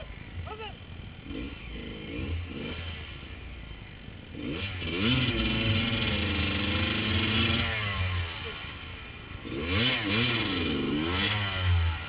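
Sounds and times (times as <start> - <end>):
off-road motorcycle engine revving: 0.0 - 12.0.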